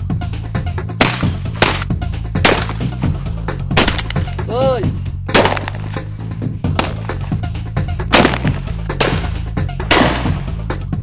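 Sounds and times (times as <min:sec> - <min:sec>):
background music: 0:00.0 - 0:11.0
shotgun shots: 0:01.0 - 0:02.9, 0:03.7 - 0:04.2, 0:05.3 - 0:05.9, 0:08.1 - 0:10.4.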